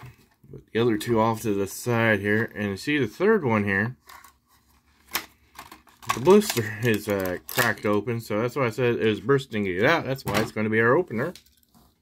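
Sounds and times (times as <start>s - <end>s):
plastic blister pack handled: 5.0s - 8.0s.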